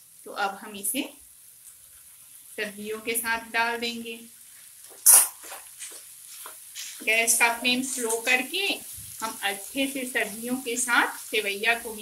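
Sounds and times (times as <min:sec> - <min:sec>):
spatula scraping frying pan: 0:04.6 - 0:08.4.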